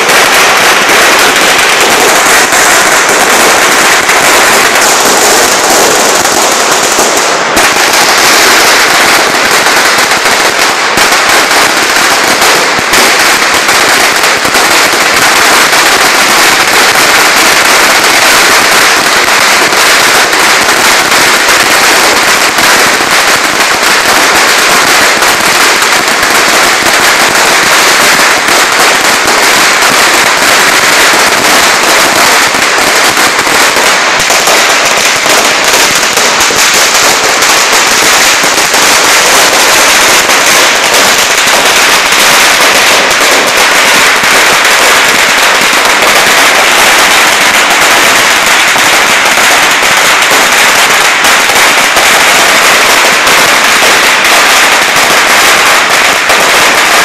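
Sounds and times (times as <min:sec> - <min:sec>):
firecrackers going off: 0:00.0 - 0:57.0.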